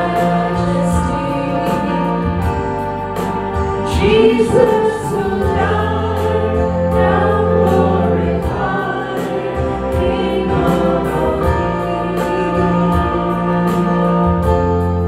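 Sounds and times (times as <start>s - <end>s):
electronic keyboard chords: 0.0s - 15.0s
group singing gospel song: 0.0s - 15.0s.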